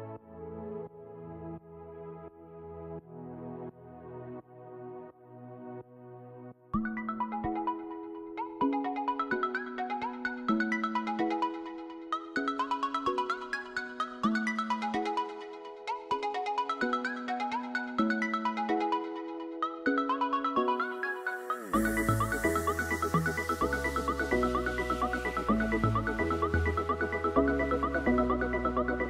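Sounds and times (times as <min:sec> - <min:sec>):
melodic tune with steady beat: 0:00.0 - 0:29.0.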